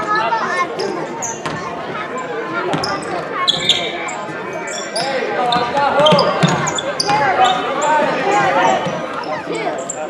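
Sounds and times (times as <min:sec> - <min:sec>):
sneakers squeaking on court: 0:00.8 - 0:01.9, 0:02.6 - 0:10.0.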